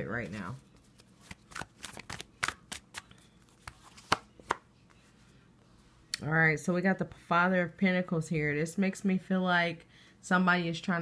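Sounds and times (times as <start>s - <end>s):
cards shuffled by hand: 0.2s - 4.6s
card snaps: 1.2s - 4.6s.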